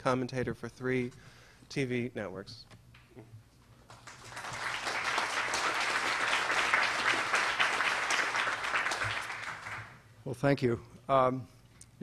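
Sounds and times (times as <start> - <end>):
audience applauding: 3.9 - 10.0.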